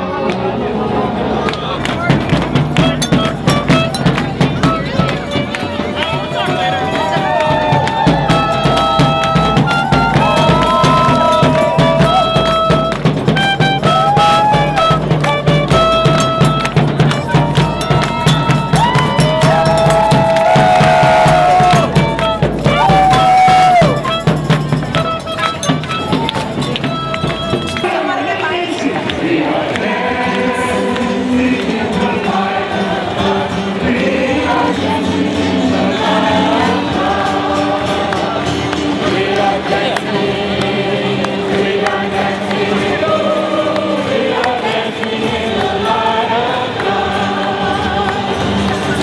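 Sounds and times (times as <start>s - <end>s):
crowd noise and voices: 0.0s - 49.0s
quick drum strokes: 1.9s - 28.0s
clarinet melody: 2.8s - 6.6s, 8.2s - 20.0s, 21.2s - 28.0s.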